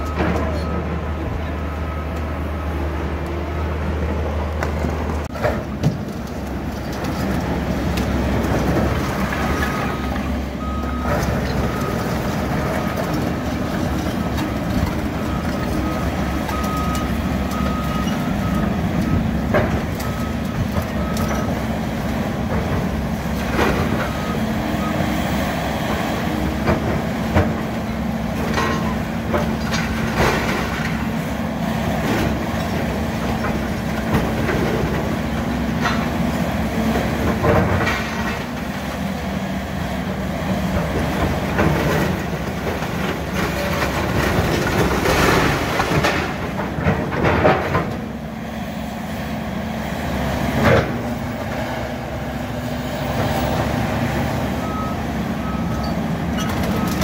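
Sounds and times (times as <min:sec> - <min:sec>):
diesel engines running: 0:00.0 - 0:57.0.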